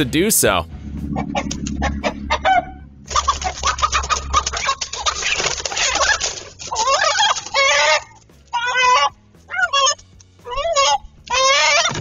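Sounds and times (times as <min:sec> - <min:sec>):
chickens squawking and cackling: 0:01.1 - 0:12.0
chickens wing-flapping and rustling: 0:03.1 - 0:09.1.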